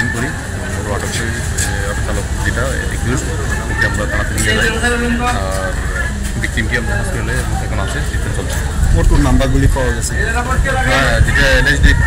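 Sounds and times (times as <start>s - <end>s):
man speaking: 0.0s - 12.0s.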